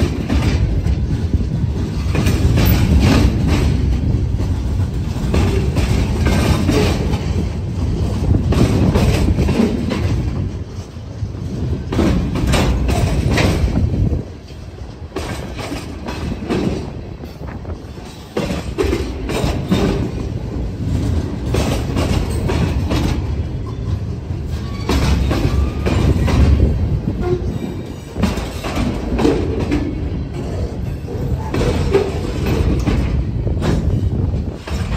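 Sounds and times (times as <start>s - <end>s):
wheels clacking over rail joints: 0.0s - 34.9s.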